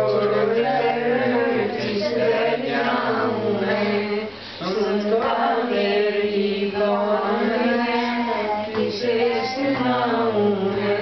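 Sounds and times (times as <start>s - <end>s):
group of voices chanting in unison: 0.0s - 11.0s.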